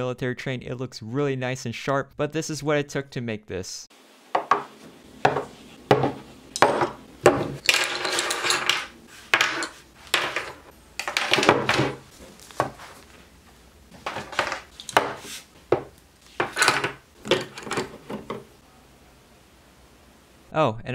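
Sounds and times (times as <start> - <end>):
bottles set down on a desk: 4.3 - 13.0, 13.9 - 18.5.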